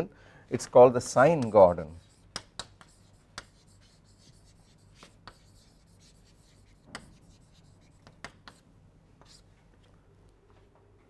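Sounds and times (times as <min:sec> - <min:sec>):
low room hum: 0:00.0 - 0:11.0
chalk tapping and scratching: 0:01.1 - 0:08.6, 0:09.2 - 0:09.5.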